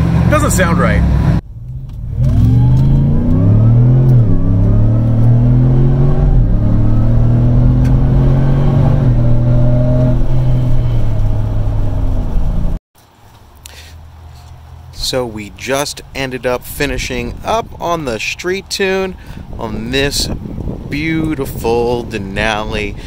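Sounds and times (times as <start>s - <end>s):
engine accelerating hard from cabin: 0.0s - 12.8s.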